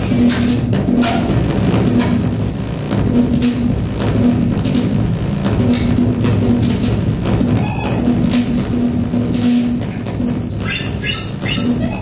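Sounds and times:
low rumbling texture: 0.0s - 10.7s
steady low hum: 0.0s - 12.0s.

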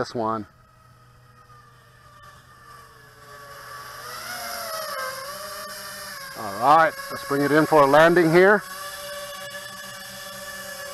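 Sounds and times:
quadcopter motors whining: 0.0s - 10.9s.

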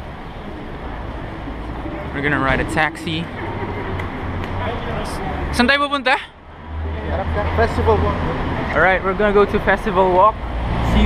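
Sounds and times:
idling taxis and street traffic: 0.0s - 11.0s.

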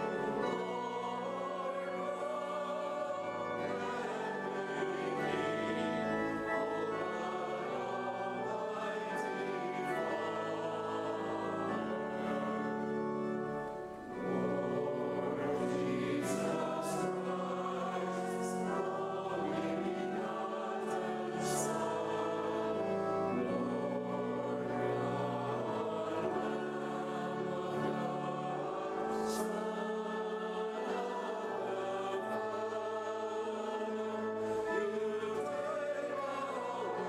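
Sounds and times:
choir singing: 0.0s - 37.0s.

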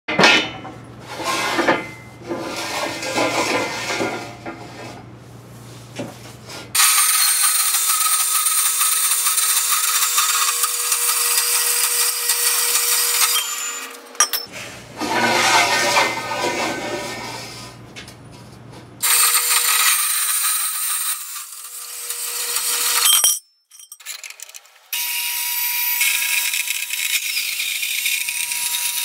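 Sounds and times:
steel tube clanking: 13.2s - 16.9s, 23.0s - 24.6s
band saw humming: 24.8s - 29.0s.

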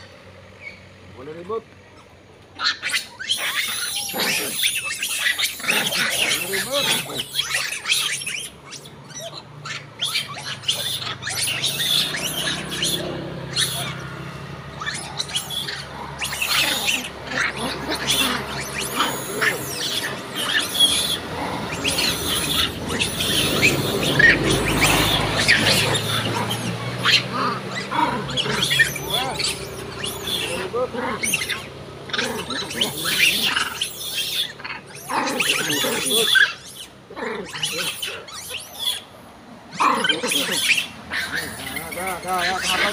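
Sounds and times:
macaques chirping and squealing: 0.0s - 42.9s
road traffic hum: 0.0s - 42.9s.

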